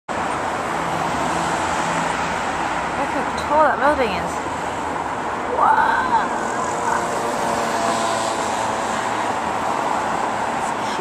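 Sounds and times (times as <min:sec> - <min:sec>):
passing road vehicles: 0:00.1 - 0:11.0.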